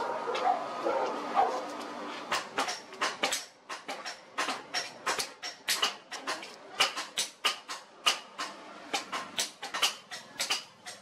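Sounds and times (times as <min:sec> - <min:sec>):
hammer striking steel on anvil: 0:02.3 - 0:11.0.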